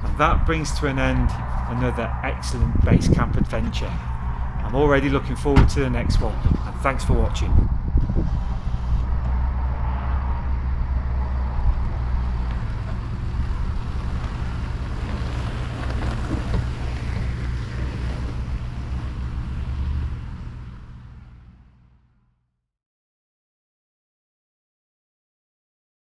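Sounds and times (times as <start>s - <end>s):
wind rumble on microphone: 0.0s - 21.4s
car engine: 0.0s - 22.4s
tyre noise: 10.5s - 20.3s.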